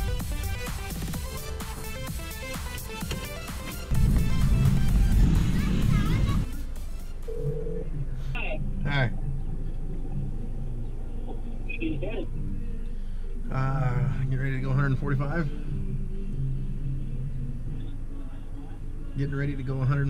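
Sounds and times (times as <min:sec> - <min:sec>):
electronic music with steady beat: 0:00.0 - 0:12.5
car engine idling: 0:00.0 - 0:20.0.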